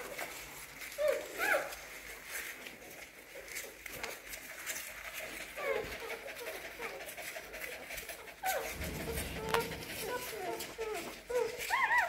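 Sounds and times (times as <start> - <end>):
puppies crying: 0.0 - 12.0.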